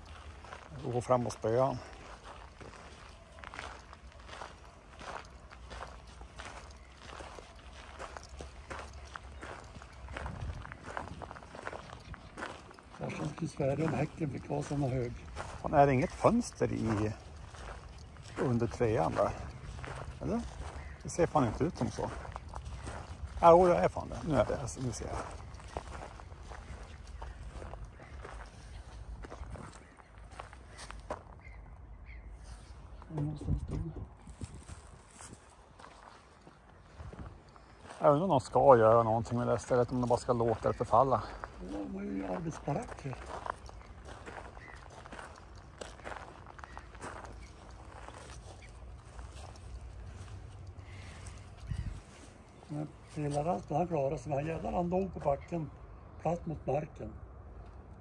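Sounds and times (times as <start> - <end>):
footsteps crunching on gravel: 0.0 - 31.6, 34.1 - 55.5.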